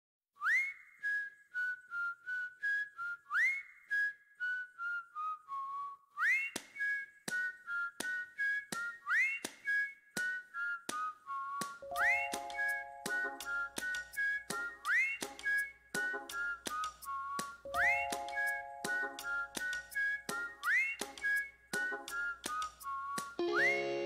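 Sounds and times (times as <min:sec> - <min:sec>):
whistled tune: 0:00.4 - 0:24.0.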